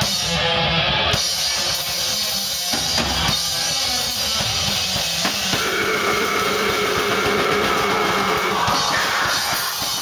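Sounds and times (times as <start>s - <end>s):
rapid drumming: 1.2s - 10.0s
distorted guitar chord: 5.5s - 8.6s.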